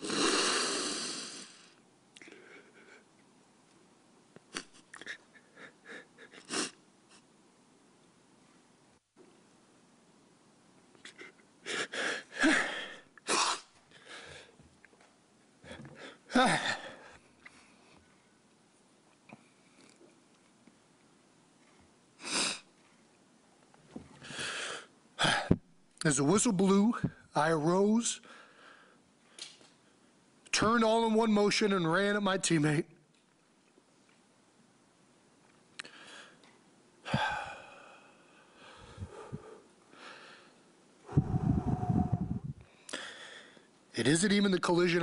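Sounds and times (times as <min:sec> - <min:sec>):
man breathing emotionally: 0:11.6 - 0:13.1, 0:13.9 - 0:14.6, 0:15.6 - 0:17.8, 0:28.2 - 0:29.4, 0:35.8 - 0:43.7.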